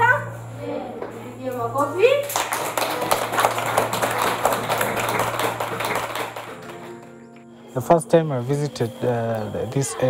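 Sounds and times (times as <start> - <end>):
children clapping: 2.2 - 7.1.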